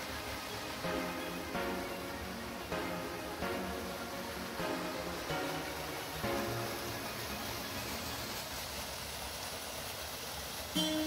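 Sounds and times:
soft music notes: 0:00.0 - 0:09.0, 0:10.8 - 0:11.0
waterfall rushing: 0:00.0 - 0:11.0.

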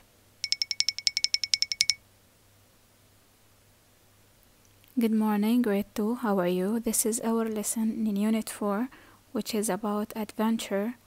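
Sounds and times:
rapid high ticking tones: 0:00.4 - 0:02.0.

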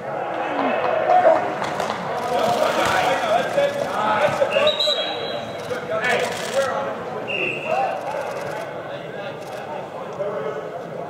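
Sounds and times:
voices calling out in a hall: 0:00.0 - 0:11.0.

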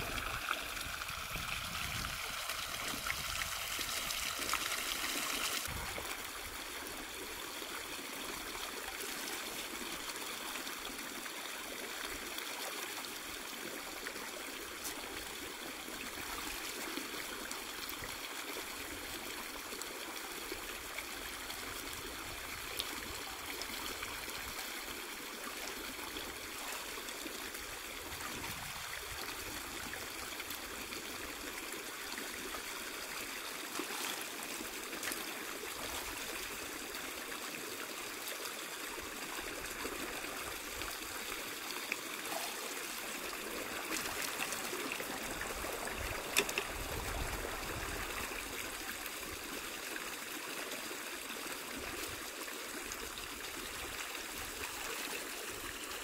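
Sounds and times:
river water running over rocks: 0:00.0 - 0:56.0.

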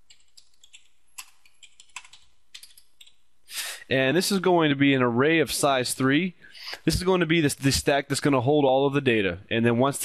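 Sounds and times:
typing on a keyboard: 0:00.1 - 0:03.2.

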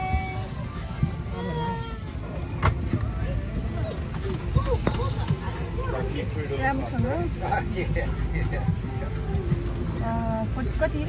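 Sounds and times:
airliner cabin rumble: 0:00.0 - 0:11.0
people talking: 0:10.0 - 0:11.0.

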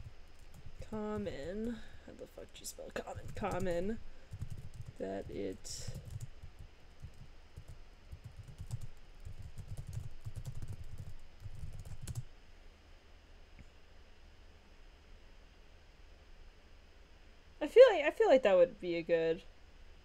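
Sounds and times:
typing on computer keyboard: 0:03.0 - 0:12.2.

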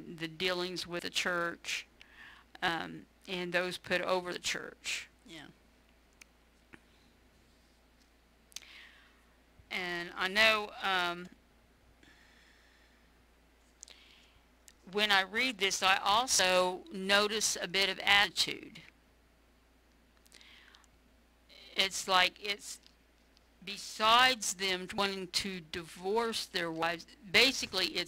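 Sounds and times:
faint low hum: 0:00.0 - 0:28.0.

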